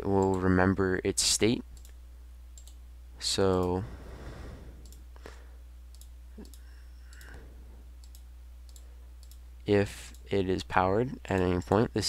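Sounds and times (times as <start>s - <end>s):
steady low hum: 0.0s - 12.0s
computer mouse clicking: 2.6s - 2.8s, 4.8s - 5.1s, 5.9s - 7.4s, 8.0s - 9.4s.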